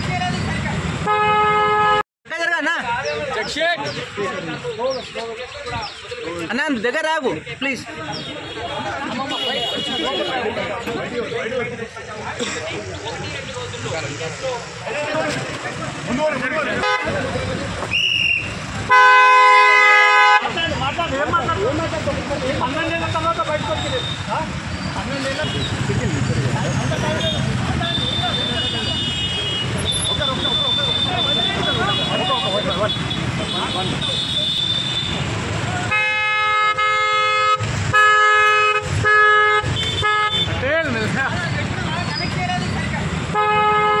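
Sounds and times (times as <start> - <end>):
voices: 0.0 - 44.0
vehicle horns honking: 1.0 - 2.0, 8.0 - 10.9, 16.6 - 21.1, 25.0 - 40.7, 43.2 - 44.0
vehicle horn blast: 1.1 - 2.0, 16.8 - 17.2, 18.9 - 20.6, 35.9 - 40.6, 43.3 - 44.0.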